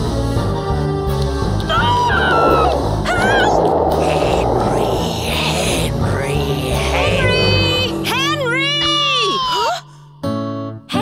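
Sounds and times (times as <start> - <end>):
high wavering squeals: 1.7 - 8.6.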